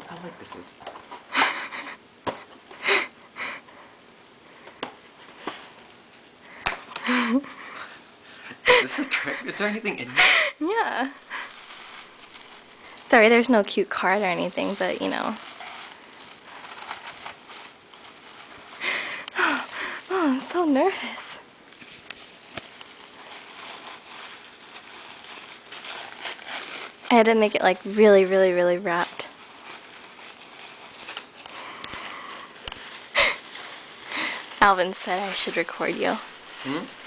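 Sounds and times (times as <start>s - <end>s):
tissue paper rustling: 5.0s - 8.0s, 8.7s - 37.0s.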